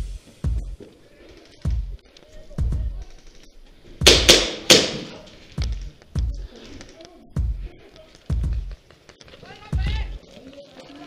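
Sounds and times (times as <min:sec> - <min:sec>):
airsoft pistol shots: 0:04.0 - 0:05.3.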